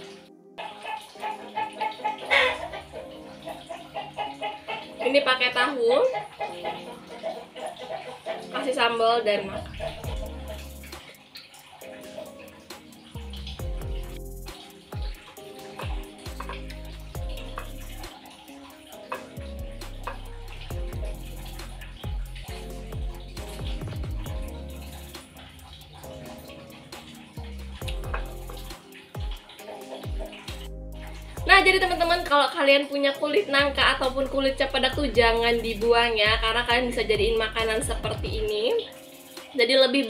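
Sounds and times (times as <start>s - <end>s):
music with low bass notes: 9.6s - 11.1s, 13.1s - 15.2s, 15.8s - 18.2s, 19.4s - 29.4s, 30.1s - 32.4s, 33.6s - 38.6s.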